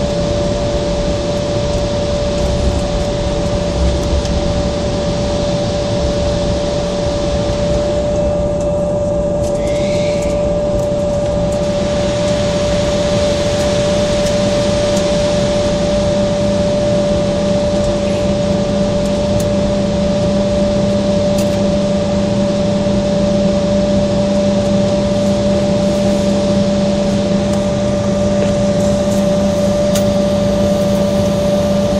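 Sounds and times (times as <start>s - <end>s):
jet engines whining at idle: 0.0s - 31.9s
rush of cabin air: 0.0s - 31.9s.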